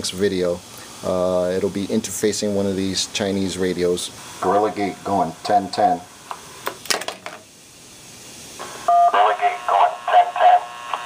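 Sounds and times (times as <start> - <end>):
radio hiss: 0.0 - 6.7, 7.8 - 11.0
voice over radio: 4.4 - 6.1, 8.9 - 11.0
two-tone beep: 8.9 - 9.2.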